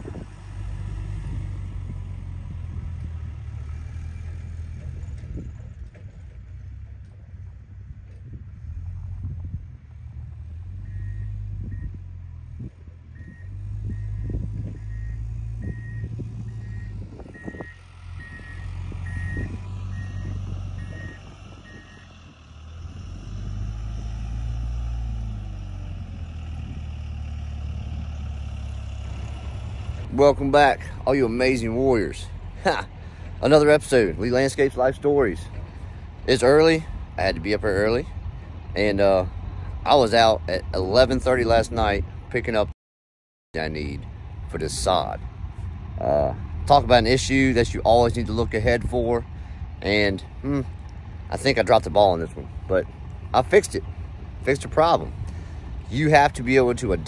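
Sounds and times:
vehicle engine rumbling: 0:00.0 - 0:42.8, 0:43.6 - 0:57.0
reversing alarm beeping: 0:10.8 - 0:12.0, 0:13.2 - 0:22.1.

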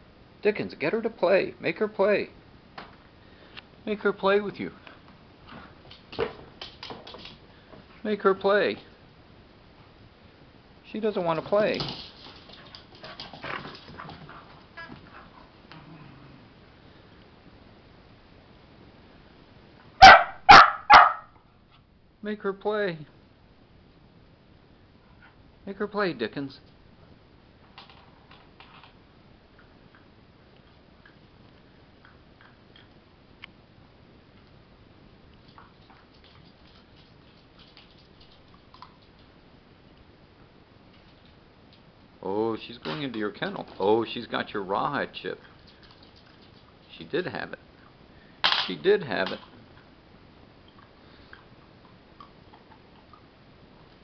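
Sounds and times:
dog claws clicking on wooden floor: 0:05.9 - 0:07.4.

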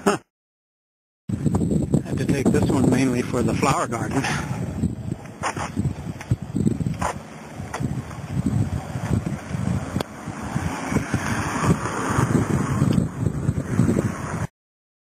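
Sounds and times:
wind buffeting microphone: 0:01.3 - 0:14.5.

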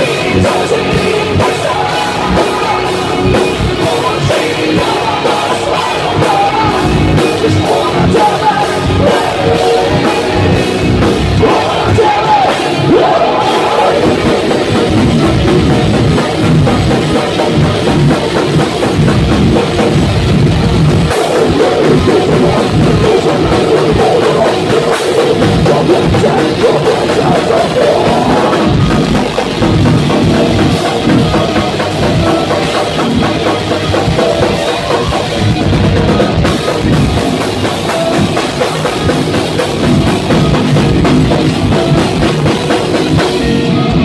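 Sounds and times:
drum kit: 0:00.0 - 0:44.0
electric guitars: 0:00.0 - 0:44.0.

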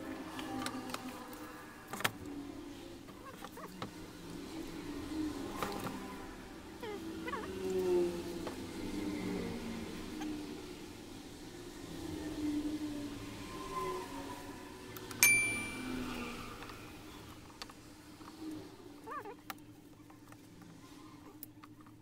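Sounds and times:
sharp metallic clink with ringing: 0:15.2 - 0:16.3.

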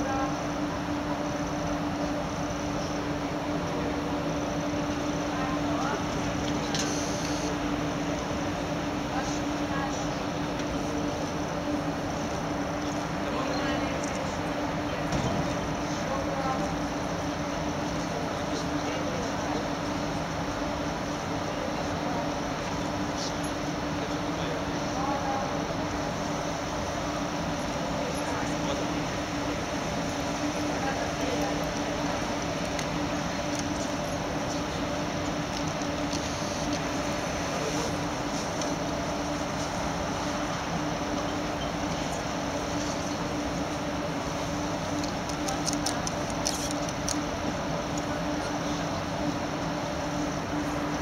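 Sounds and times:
constant hum: 0:00.0 - 0:51.0
faint indistinct voices: 0:00.0 - 0:51.0
indoor hall background noise: 0:00.0 - 0:51.0.

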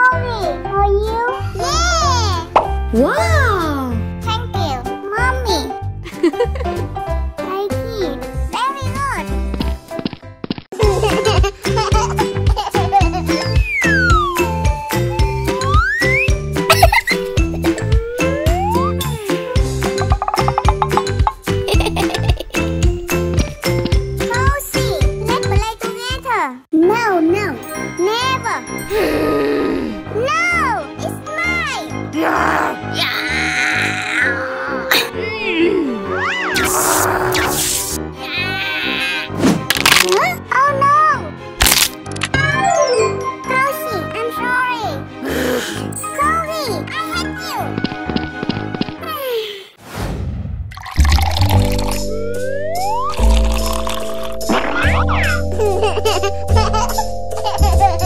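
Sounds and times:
upbeat children's music: 0:00.0 - 0:10.1, 0:10.8 - 0:29.4, 0:30.0 - 0:32.2, 0:39.9 - 0:49.3, 0:51.0 - 0:58.0
pop sound effect: 0:02.6 - 0:02.8, 0:19.9 - 0:21.5, 0:41.6 - 0:43.4, 0:51.0 - 0:55.4
steady beat: 0:54.1 - 0:58.0.

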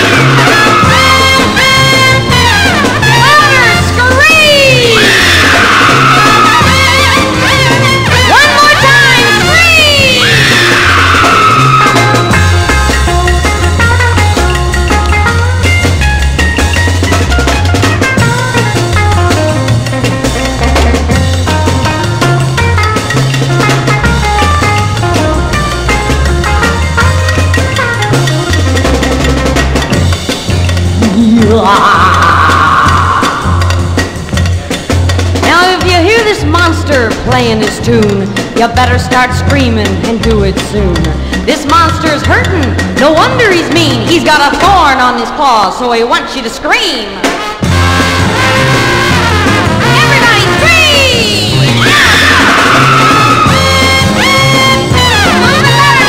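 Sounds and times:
repeating bass line: 0:00.0 - 0:44.9, 0:47.6 - 0:56.0
surf rock band playing: 0:00.0 - 0:44.9, 0:47.2 - 0:56.0
drums: 0:00.0 - 0:56.0.

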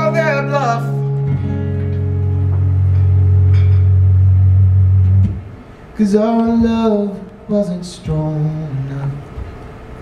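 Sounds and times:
acoustic guitar chord ringing: 0:00.0 - 0:05.5.

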